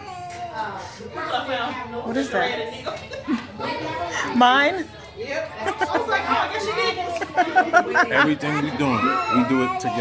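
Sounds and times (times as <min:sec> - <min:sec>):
people chattering: 0:00.0 - 0:10.0
woman laughing: 0:07.1 - 0:08.4.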